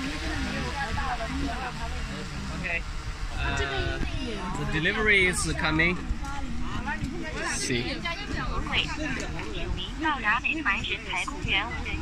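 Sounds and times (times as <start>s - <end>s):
people talking: 0.0s - 12.0s.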